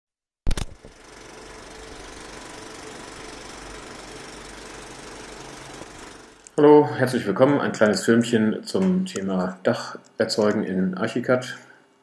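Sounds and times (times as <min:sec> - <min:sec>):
film projector rattle: 0:00.5 - 0:06.6.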